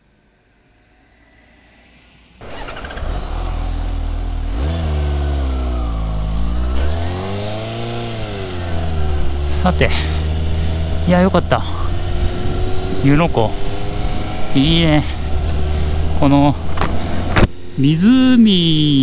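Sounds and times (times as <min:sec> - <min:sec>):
motorcycle engine accelerating: 0:00.0 - 0:19.0
wind noise: 0:11.8 - 0:17.5.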